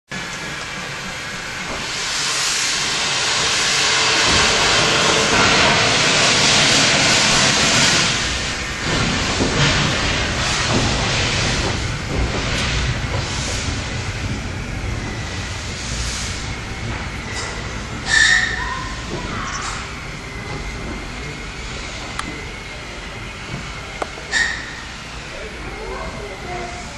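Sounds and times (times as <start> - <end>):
steam locomotive exhaust chuffs: 0.1 - 26.9
steam hissing: 0.2 - 26.9.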